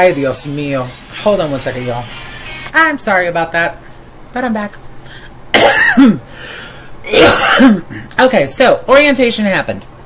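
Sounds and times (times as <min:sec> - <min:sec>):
woman coughing: 0:05.5 - 0:06.2, 0:07.1 - 0:08.0.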